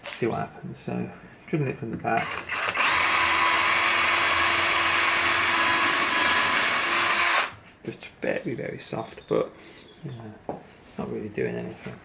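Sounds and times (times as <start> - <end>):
cordless drill boring into wood: 2.2 - 7.5.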